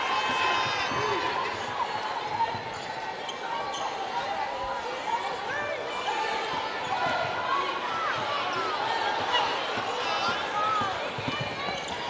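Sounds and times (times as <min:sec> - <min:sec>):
murmur of crowd: 0:00.0 - 0:12.0.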